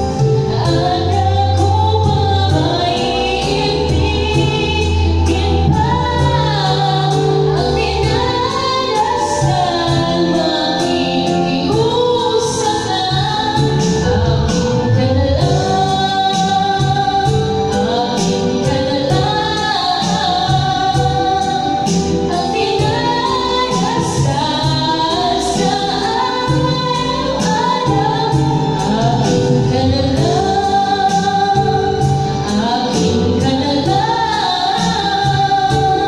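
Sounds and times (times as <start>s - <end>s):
backing track with steady beat: 0.0s - 36.0s
woman singing karaoke: 0.0s - 36.0s.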